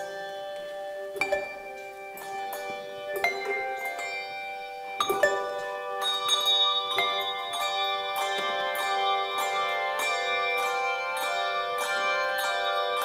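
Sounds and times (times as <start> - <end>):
handbell choir ringing a hymn: 0.0 - 13.0.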